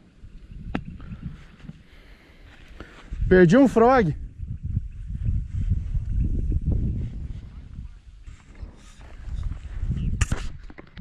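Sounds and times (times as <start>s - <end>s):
microphone jostling rumble: 2.6s - 11.0s.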